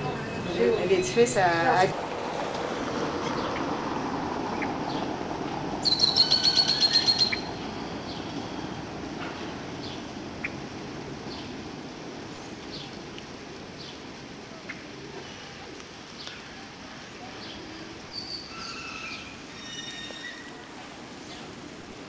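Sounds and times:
outdoor background noise: 0.0 - 22.0
rapid run of high chirps: 5.8 - 8.8.

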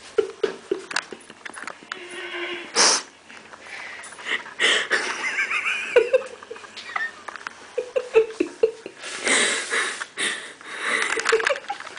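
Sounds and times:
person making breathy hissy bursts: 2.1 - 3.2.

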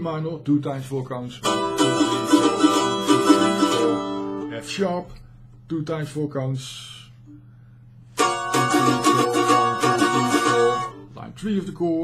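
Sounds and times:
mandolin strumming: 1.4 - 4.7, 8.1 - 11.2.

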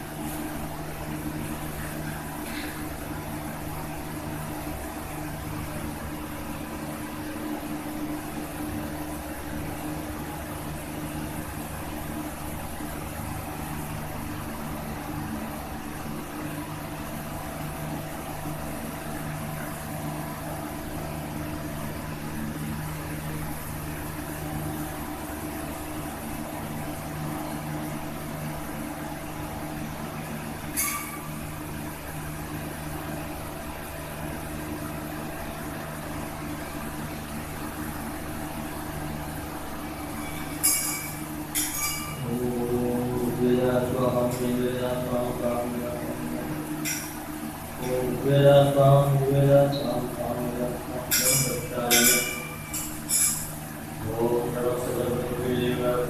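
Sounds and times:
machine hum: 0.0 - 56.0
metallic clink: 40.3 - 42.2, 51.1 - 53.5.

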